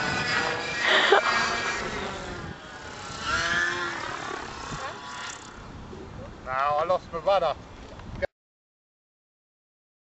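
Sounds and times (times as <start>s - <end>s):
rc helicopter engine whine: 0.0s - 5.7s
wind noise: 0.0s - 8.3s.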